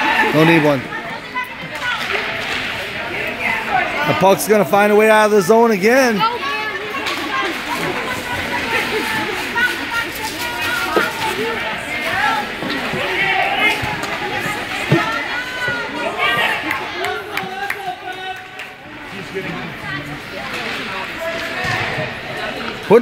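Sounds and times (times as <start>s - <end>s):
indistinct voices talking: 0.0s - 23.0s.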